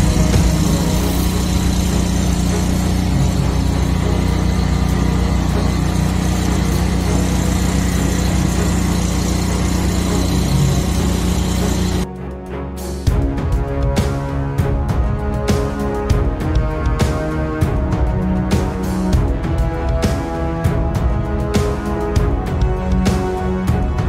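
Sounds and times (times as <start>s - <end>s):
engine-driven pump running: 0.0s - 12.1s, 13.1s - 24.0s.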